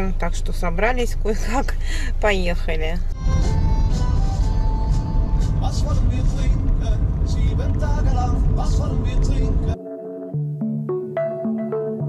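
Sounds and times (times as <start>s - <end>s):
car engine and tyres rumbling: 0.0s - 9.8s.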